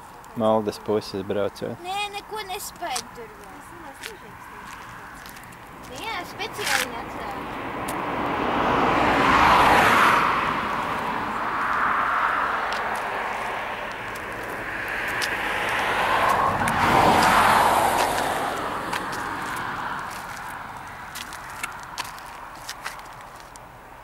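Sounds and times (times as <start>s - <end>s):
cars passing by: 0.0s - 24.0s.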